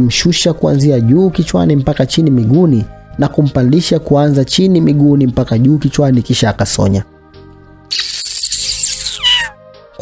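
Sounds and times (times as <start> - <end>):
soft background music: 0.0 - 10.0
person sucking teeth: 7.9 - 9.5.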